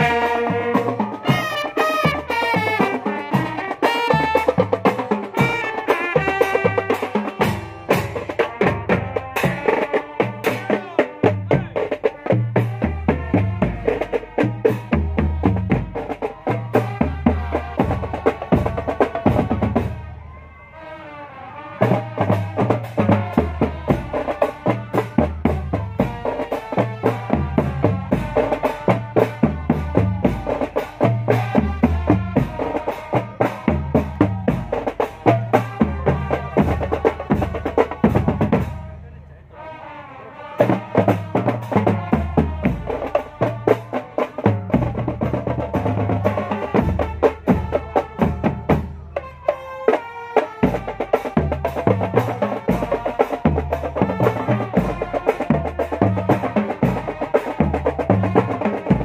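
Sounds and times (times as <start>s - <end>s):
marching drums: 0.0s - 20.4s, 21.8s - 59.0s
marching band melody: 0.0s - 59.0s.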